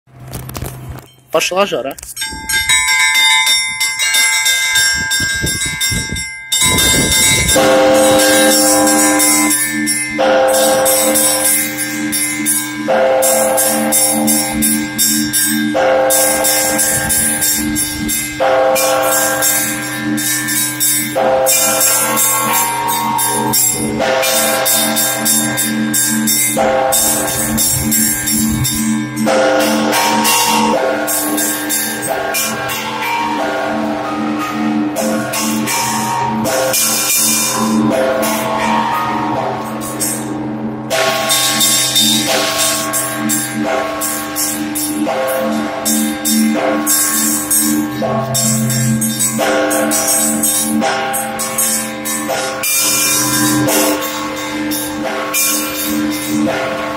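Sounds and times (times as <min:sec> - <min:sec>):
heavy bell strokes: 0:01.0 - 0:56.9
small bells chiming fast: 0:02.1 - 0:56.9.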